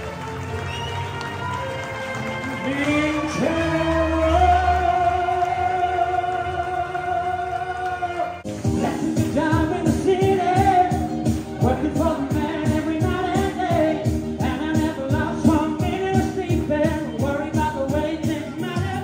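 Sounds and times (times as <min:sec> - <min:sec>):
singers performing pop song: 0:02.6 - 0:19.0
instrumental backing with beat: 0:08.4 - 0:19.0.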